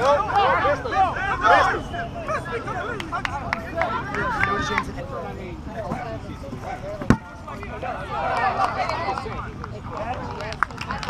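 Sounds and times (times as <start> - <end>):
people shouting and talking: 0.0 - 11.0
foot kicking a rubber ball: 5.8 - 7.3.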